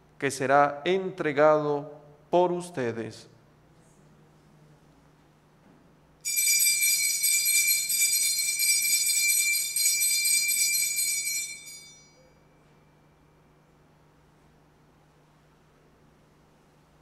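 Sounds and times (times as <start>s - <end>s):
small bells ringing: 6.2s - 13.0s.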